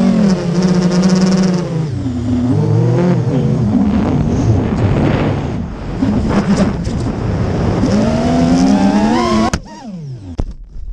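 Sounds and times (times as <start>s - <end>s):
drone crash impact: 3.7s - 8.0s
quadcopter motors whining: 7.8s - 10.4s.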